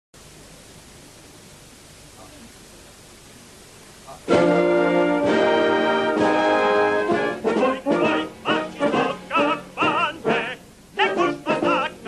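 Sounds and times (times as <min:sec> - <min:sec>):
steady background hiss: 0:00.2 - 0:12.0.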